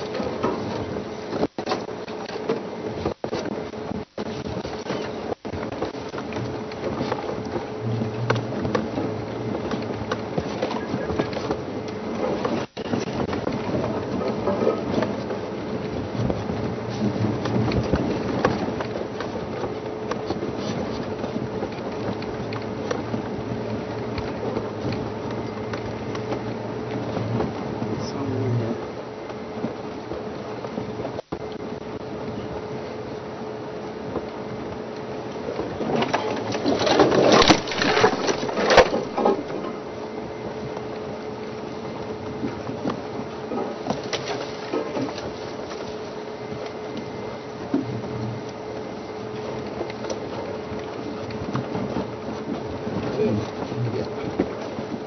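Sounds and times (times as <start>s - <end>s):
noisy field sound with hum: 0.0s - 55.0s.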